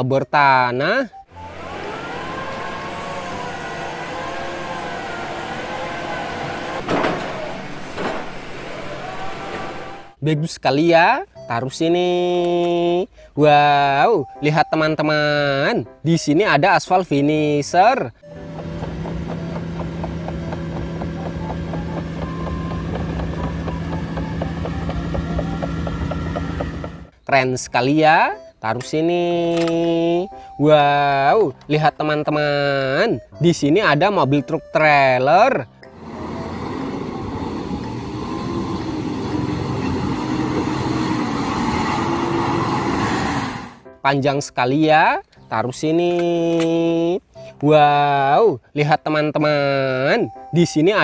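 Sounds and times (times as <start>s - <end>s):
diesel engine hum: 1.1s - 10.2s, 18.2s - 27.2s, 34.4s - 43.9s
drilling rig droning with whine: 1.3s - 10.2s, 35.9s - 43.8s
crawler tracks clicking: 18.3s - 27.2s.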